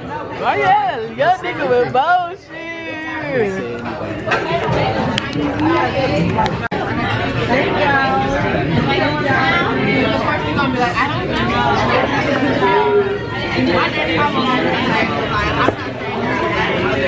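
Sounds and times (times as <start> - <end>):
restaurant chatter: 0.0 - 17.0.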